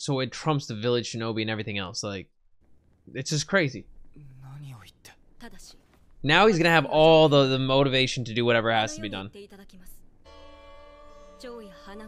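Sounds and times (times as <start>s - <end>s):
person speaking softly: 8.6s - 9.3s.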